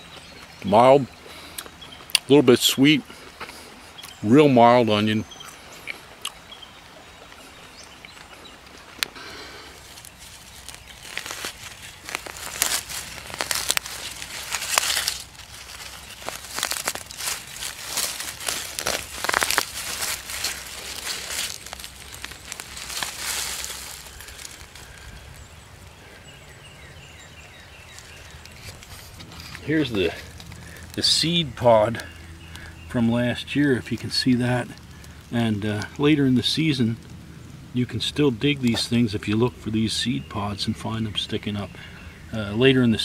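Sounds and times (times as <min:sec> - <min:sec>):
outdoor background noise: 0:00.0 - 0:43.0
rustling of dry leaves: 0:00.0 - 0:43.0.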